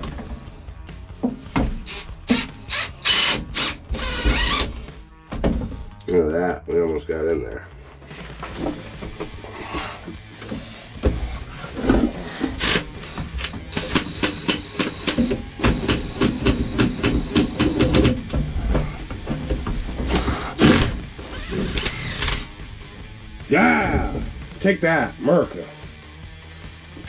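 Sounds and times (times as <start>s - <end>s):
cordless power tool burst: 20.6s - 22.5s.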